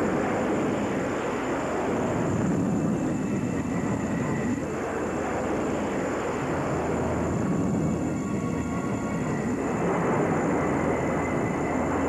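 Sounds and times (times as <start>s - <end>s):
jet engines roaring: 0.0s - 12.0s.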